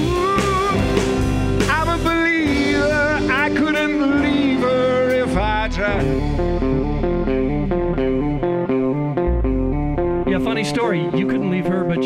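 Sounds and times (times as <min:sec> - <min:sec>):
bass and drums: 0:00.0 - 0:12.0
electric guitar lead: 0:00.0 - 0:12.0.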